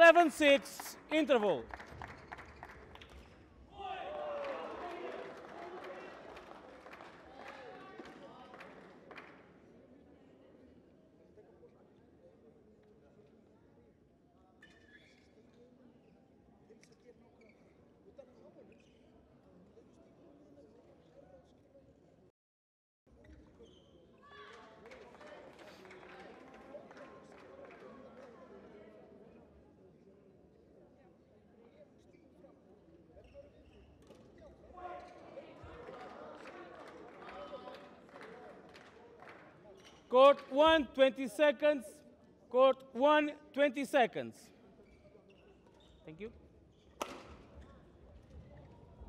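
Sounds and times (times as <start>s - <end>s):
people talking at once: 0.0s - 1.7s, 40.1s - 44.6s
people talking in a hall: 0.0s - 22.3s, 23.1s - 49.0s.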